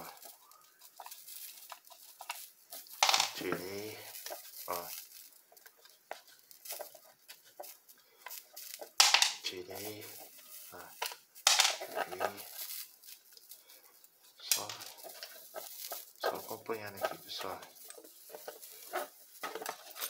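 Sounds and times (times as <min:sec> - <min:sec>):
person's voice: 0:03.0 - 0:05.0, 0:09.4 - 0:11.0, 0:11.8 - 0:12.6, 0:16.2 - 0:17.8.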